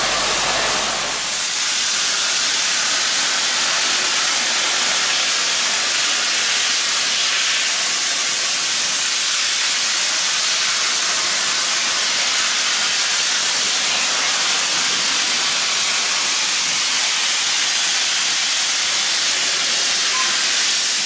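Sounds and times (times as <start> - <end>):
steam hissing from locomotive: 0.0 - 21.0.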